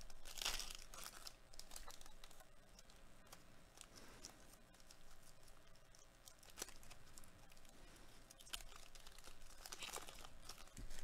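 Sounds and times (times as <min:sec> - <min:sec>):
foil wrapper crinkling: 0:00.0 - 0:07.7, 0:08.3 - 0:11.0.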